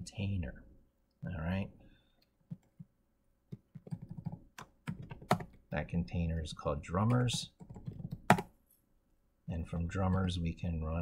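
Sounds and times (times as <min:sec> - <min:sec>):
computer keyboard typing: 0:03.5 - 0:05.6, 0:07.0 - 0:08.5.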